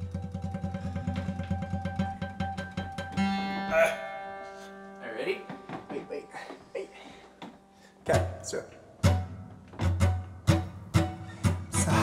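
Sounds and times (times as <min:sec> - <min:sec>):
acoustic guitar strumming: 0:00.0 - 0:06.5, 0:07.6 - 0:12.0.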